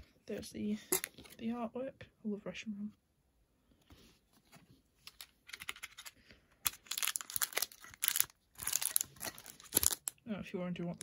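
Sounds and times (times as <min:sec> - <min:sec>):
foil wrapper crinkling: 0:06.7 - 0:10.2.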